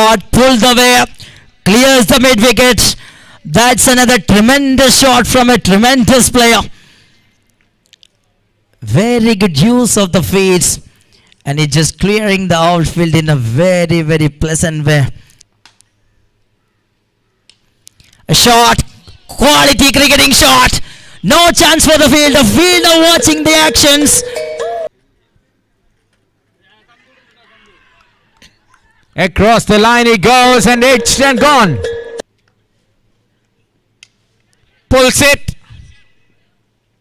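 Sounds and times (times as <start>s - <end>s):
commentator speaking: 0.0s - 6.7s, 18.3s - 24.4s, 29.2s - 32.0s.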